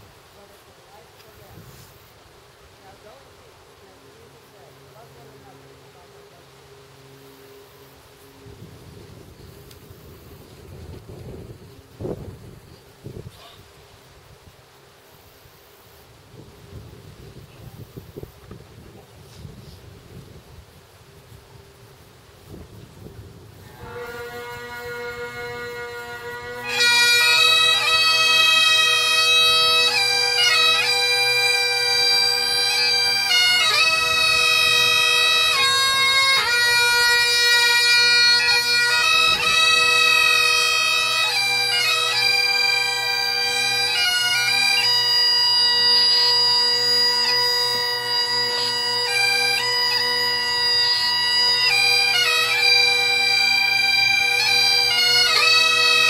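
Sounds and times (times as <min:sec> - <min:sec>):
bagpipe drones: 0:03.0 - 0:13.6, 0:23.3 - 0:56.0
bagpipe chanter melody: 0:23.6 - 0:56.0.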